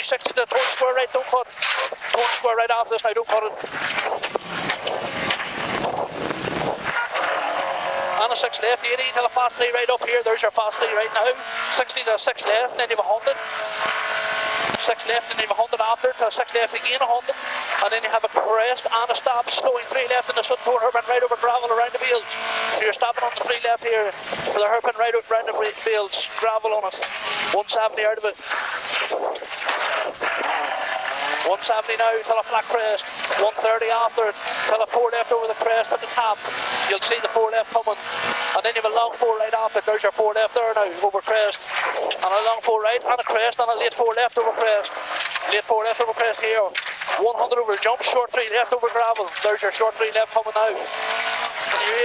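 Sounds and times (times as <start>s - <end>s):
tyre and road noise: 0.0s - 52.0s
car engine off throttle: 0.3s - 52.0s
wind noise: 3.5s - 7.0s, 28.4s - 30.6s.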